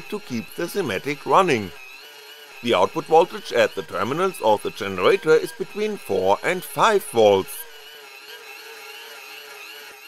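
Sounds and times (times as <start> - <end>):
generator motor whine: 0.0 - 10.0.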